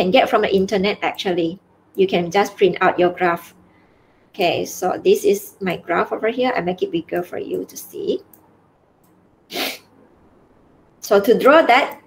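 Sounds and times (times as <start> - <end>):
sharp burst of breath: 9.5 - 9.9.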